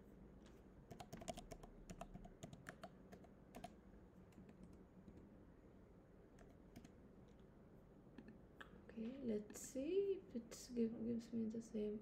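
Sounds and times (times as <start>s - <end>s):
faint computer keyboard typing: 0.9s - 5.3s, 6.3s - 7.4s.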